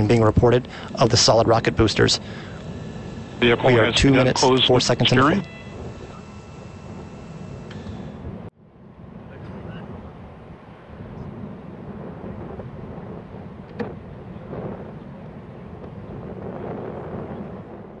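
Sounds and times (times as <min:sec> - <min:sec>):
steady low rumble: 0:00.0 - 0:18.0
wind on microphone: 0:00.0 - 0:18.0.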